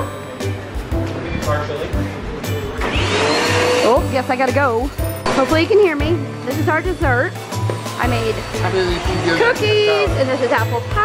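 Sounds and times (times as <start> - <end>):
vacuum cleaner motor whine: 2.8 - 4.1.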